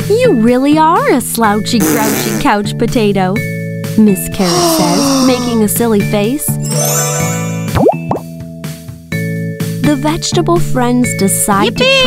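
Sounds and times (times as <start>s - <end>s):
children's background music: 0.0s - 12.0s
rising cartoon bloop: 4.4s - 5.7s.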